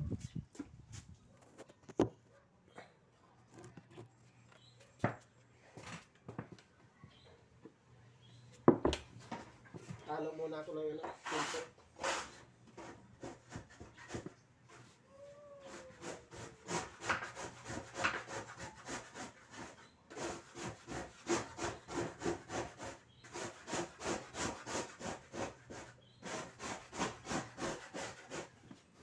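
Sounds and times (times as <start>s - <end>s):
hand tool scraping a board: 11.0s - 15.0s, 15.6s - 28.9s.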